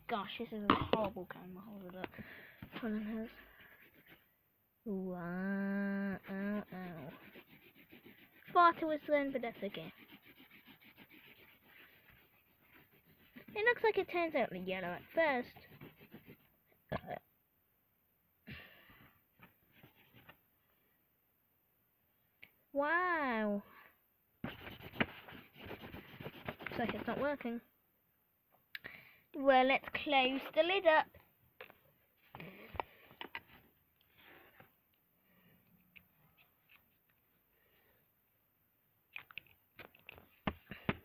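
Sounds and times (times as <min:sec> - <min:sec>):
marker scribbling on paper: 0:02.6 - 0:04.3, 0:06.2 - 0:16.5, 0:24.4 - 0:27.4.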